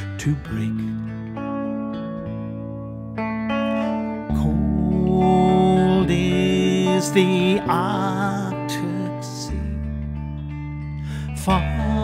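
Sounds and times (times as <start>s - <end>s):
electric guitar chords ringing: 0.0s - 12.0s.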